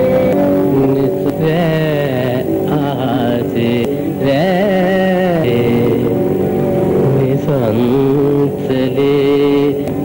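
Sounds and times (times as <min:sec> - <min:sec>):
man singing: 0:00.0 - 0:06.2, 0:07.0 - 0:10.0
harmonium: 0:00.0 - 0:10.0.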